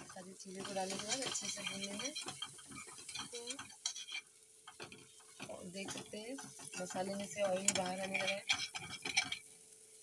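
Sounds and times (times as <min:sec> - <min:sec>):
spatula scraping paste in a pan: 0:00.0 - 0:09.5.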